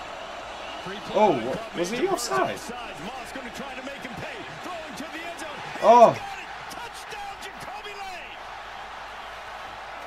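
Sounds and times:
sports commentary speech: 0.7s - 8.5s.

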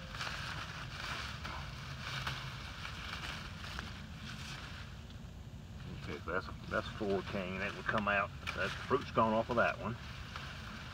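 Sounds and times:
leaves and canes rustling: 0.0s - 10.9s.

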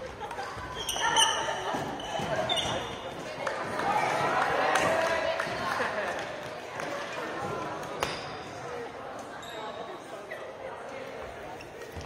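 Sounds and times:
murmur of voices in hall: 0.0s - 12.0s.

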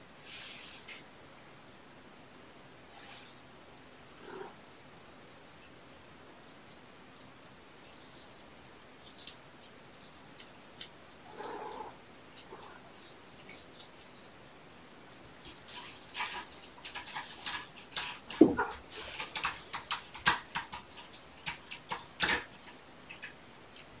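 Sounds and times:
kittens scratching and rustling: 4.1s - 24.0s.

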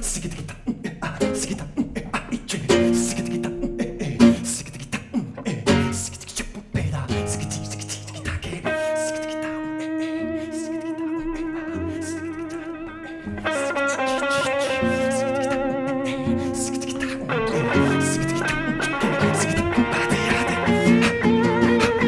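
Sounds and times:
acoustic guitar: 0.0s - 22.0s
electric guitar with vibrato: 2.7s - 4.7s, 5.4s - 6.4s, 7.0s - 22.0s.

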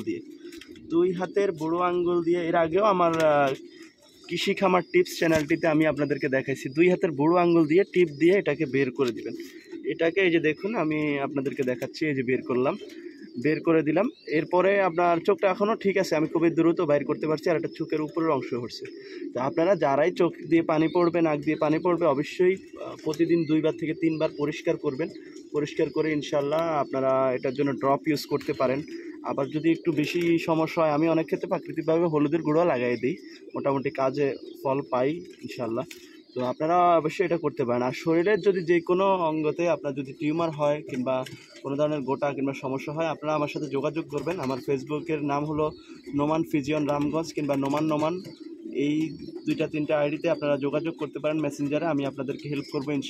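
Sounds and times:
man's voice: 0.0s - 0.2s, 0.9s - 3.7s, 4.3s - 53.0s
pigeon cooing: 0.0s - 53.0s.

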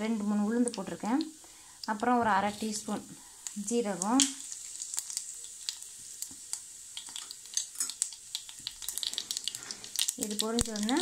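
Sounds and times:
ghee sizzling in a saucepan: 0.0s - 11.0s.

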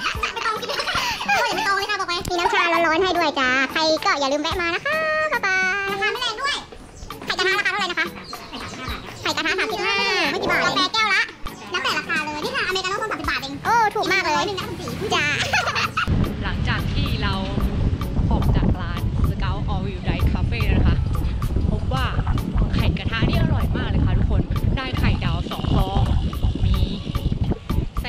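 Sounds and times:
woman talking or laughing: 0.0s - 1.7s, 15.0s - 16.1s
high-pitched voices chattering: 0.0s - 16.1s, 20.2s - 28.0s
wind rumble on microphone: 16.1s - 28.0s.

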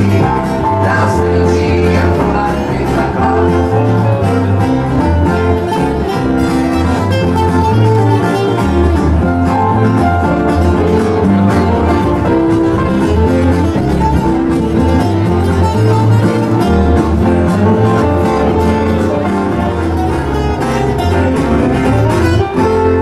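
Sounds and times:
acoustic guitar: 0.0s - 23.0s
bass line: 0.0s - 23.0s.

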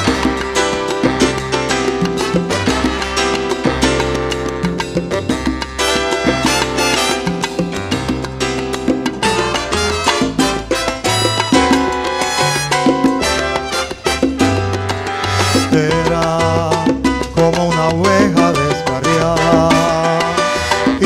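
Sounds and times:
horn section playing: 0.0s - 3.9s, 5.4s - 7.7s, 9.3s - 16.0s
congas and timbales: 0.0s - 21.0s
keyboard: 0.0s - 21.0s
upright bass line: 0.0s - 21.0s.

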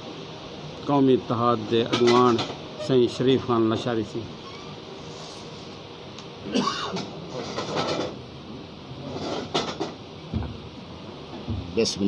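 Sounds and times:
rustling and scraping near microphone: 4.4s - 5.8s, 7.0s - 8.2s, 9.0s - 10.0s.

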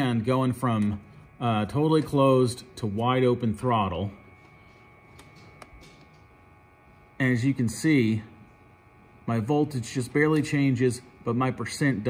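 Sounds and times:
faint steady high whine: 0.0s - 12.0s.

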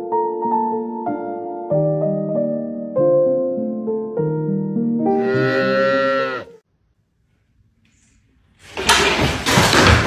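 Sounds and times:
cat yowling: 5.2s - 6.6s.

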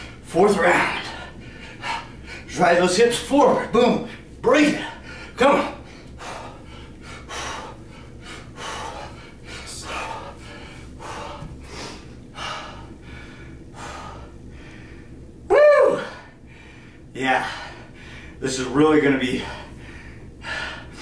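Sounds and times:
man breathing hard: 1.0s - 2.6s, 4.9s - 15.3s, 16.0s - 18.4s, 19.3s - 21.0s
loud voiced exclamation: 15.5s - 16.2s.

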